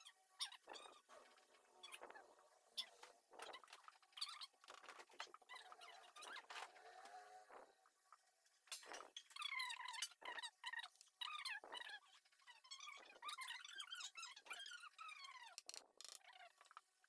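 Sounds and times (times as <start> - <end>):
wavering squeaks: 0.0 - 7.8.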